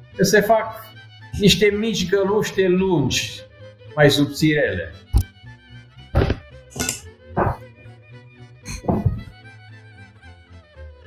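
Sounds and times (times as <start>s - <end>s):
background music with fiddle: 0.0s - 11.0s.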